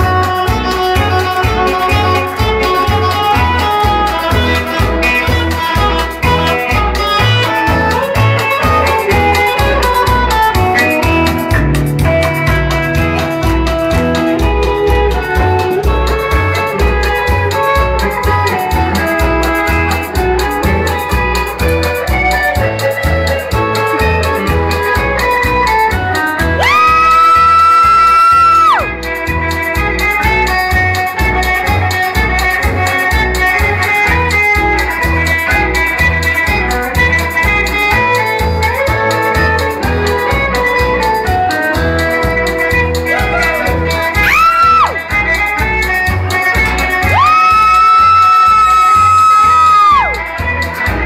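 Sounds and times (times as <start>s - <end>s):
electric guitar playing polka: 0.0s - 51.0s
pulsing bass beat: 0.0s - 51.0s
loud high whoop: 26.6s - 28.9s, 43.1s - 45.0s, 47.0s - 50.2s.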